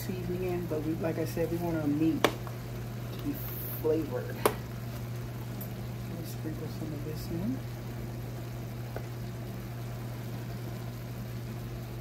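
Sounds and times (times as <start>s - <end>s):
meat sizzling in a saucepan: 0.0s - 12.0s.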